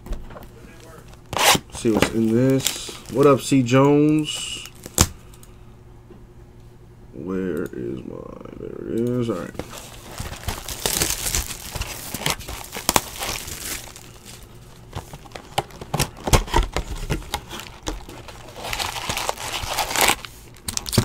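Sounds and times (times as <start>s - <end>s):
pack wrappers crinkling: 0.8s - 5.1s, 9.4s - 21.0s
plastic shrink wrap crinkling and tearing: 0.8s - 5.1s, 9.4s - 21.0s.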